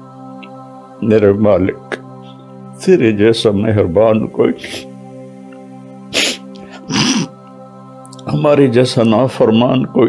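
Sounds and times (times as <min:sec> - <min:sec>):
background music steady chord: 0:00.0 - 0:10.0.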